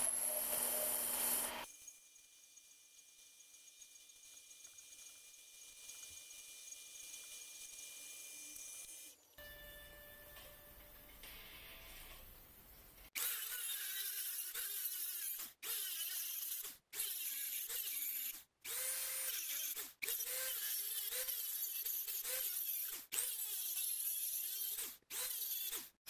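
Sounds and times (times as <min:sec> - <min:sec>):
rotary tool cutting metal: 0:00.0 - 0:09.3, 0:13.2 - 0:26.0.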